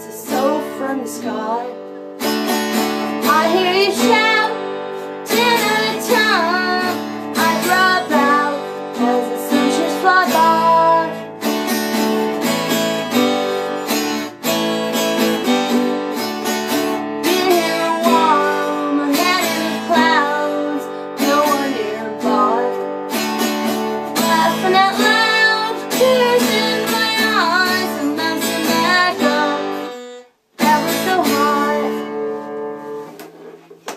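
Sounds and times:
acoustic guitar strumming: 0.0s - 33.9s.

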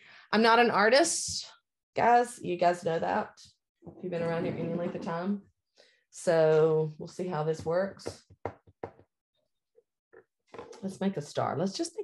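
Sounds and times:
woman speaking: 0.4s - 3.4s, 4.0s - 5.4s, 6.2s - 8.2s.

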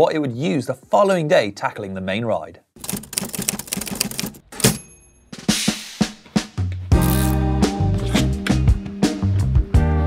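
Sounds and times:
typewriter keystrokes: 2.8s - 4.8s
typewriter carriage bell: 2.8s - 5.2s.

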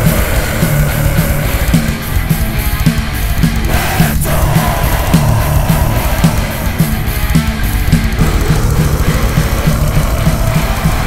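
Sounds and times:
distorted metal guitar riff: 0.0s - 11.0s
drums: 0.0s - 11.0s.

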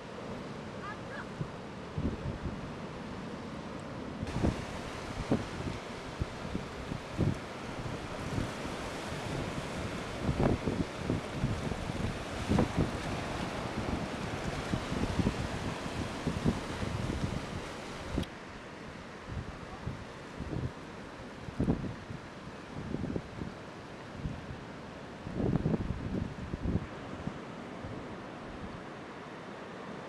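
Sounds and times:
ocean surf breaking: 0.0s - 21.4s
wind buffeting microphone: 4.2s - 18.3s, 25.3s - 27.4s.

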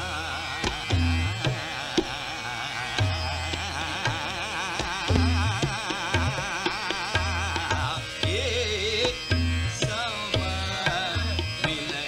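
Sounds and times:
man singing ornamented line: 0.0s - 12.0s
tabla strokes: 0.0s - 12.0s
tanpura drone: 0.0s - 12.0s.

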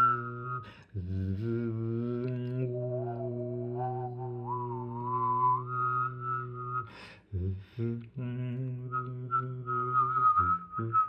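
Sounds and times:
man humming low drone: 0.0s - 6.8s
man whistling melody: 0.0s - 11.0s.

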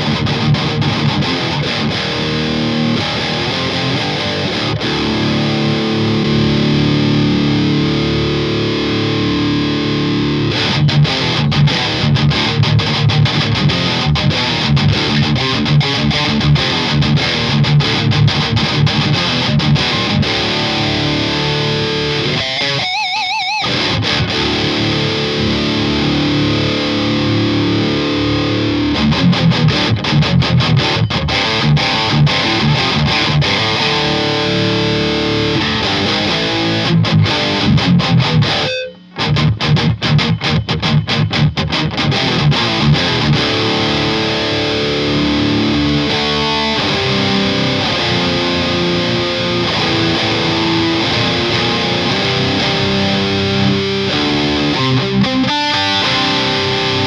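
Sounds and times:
distorted electric guitar metal riffs: 0.0s - 57.0s.

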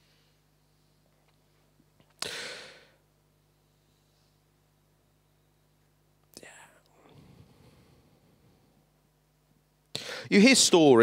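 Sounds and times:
faint whispering: 6.3s - 8.8s.

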